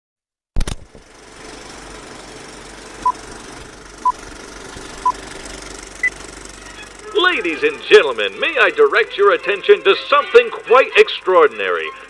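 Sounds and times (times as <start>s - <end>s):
engine running with fast rattle: 0.6s - 12.0s.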